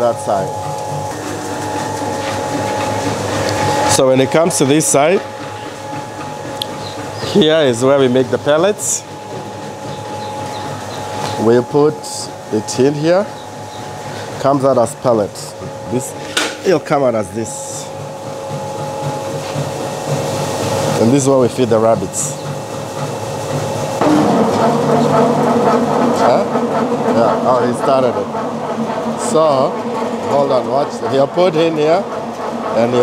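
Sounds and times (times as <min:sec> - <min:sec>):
constant high hum: 0:00.0 - 0:33.0
machinery running: 0:00.0 - 0:33.0.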